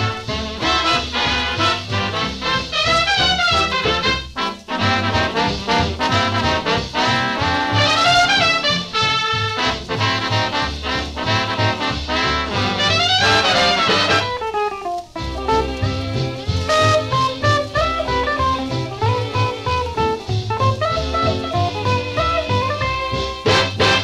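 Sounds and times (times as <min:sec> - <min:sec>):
pulsing bass beat: 0:00.0 - 0:14.4, 0:15.2 - 0:24.0
swing dance band music: 0:00.0 - 0:24.0.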